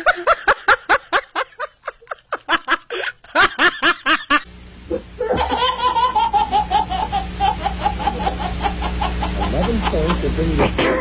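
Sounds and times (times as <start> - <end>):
person laughing: 0.0 - 11.0
baby belly-laughing: 5.2 - 11.0.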